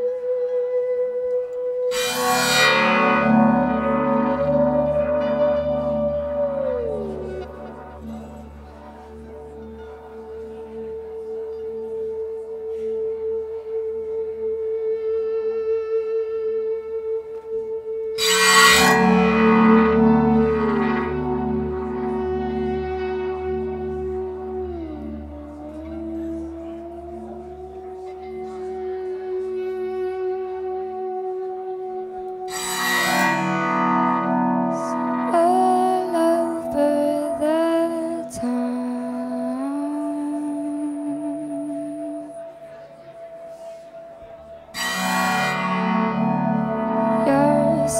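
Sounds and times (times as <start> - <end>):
ringing guitar chord: 1.9 - 10.4, 18.2 - 25.4, 32.5 - 43.6, 44.2 - 47.9
held guitar note: 1.9 - 13.0, 18.2 - 47.9
woman singing into microphone: 34.7 - 42.9, 46.8 - 47.9.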